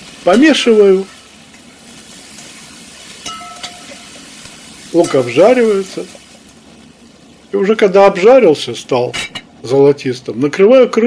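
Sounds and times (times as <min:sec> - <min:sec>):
pork and onion sizzling: 0:00.0 - 0:10.4.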